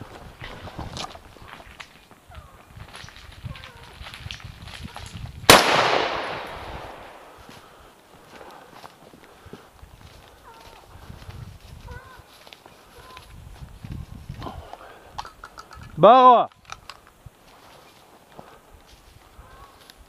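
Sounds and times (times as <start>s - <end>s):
rifle shot echoing: 5.5s - 7.4s.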